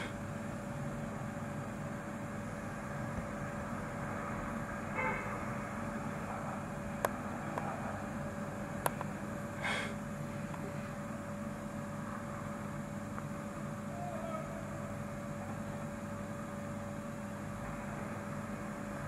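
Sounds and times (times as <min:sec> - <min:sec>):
distant traffic rumble: 0:00.0 - 0:19.0
faint hum: 0:00.0 - 0:19.0.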